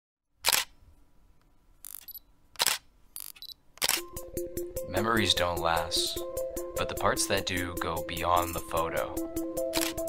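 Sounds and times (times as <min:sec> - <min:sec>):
camera shutter firing: 0:00.4 - 0:00.8, 0:01.9 - 0:04.1, 0:09.7 - 0:10.0.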